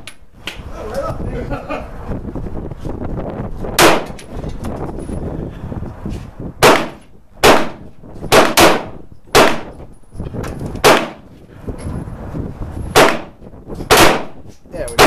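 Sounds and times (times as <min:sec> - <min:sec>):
pistol shots: 0:03.8 - 0:04.2, 0:06.6 - 0:09.8, 0:10.8 - 0:11.2, 0:12.9 - 0:14.4.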